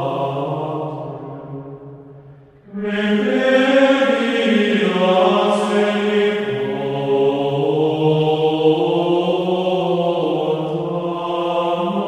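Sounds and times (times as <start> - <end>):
choir chanting sustained notes: 0.0 - 12.0.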